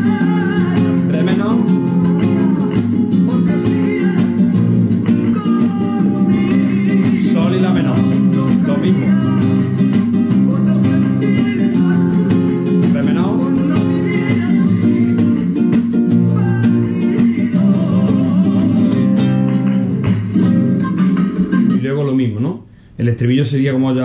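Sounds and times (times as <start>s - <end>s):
guitar strumming chords: 0.0s - 22.0s.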